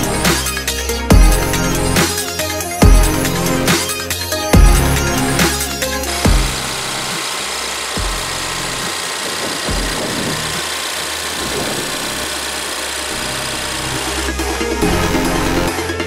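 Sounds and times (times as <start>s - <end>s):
car engine idling: 0.0s - 15.7s
electronic background music: 0.0s - 16.0s.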